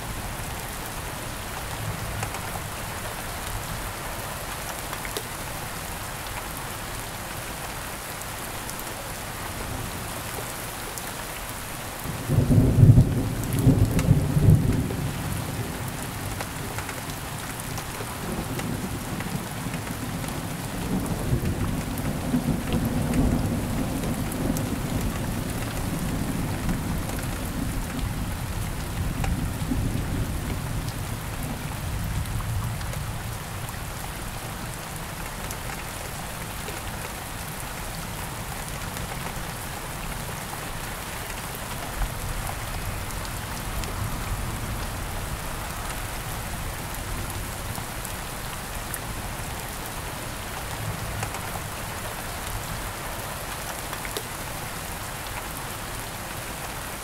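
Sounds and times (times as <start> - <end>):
steady rain: 0.0 - 57.0.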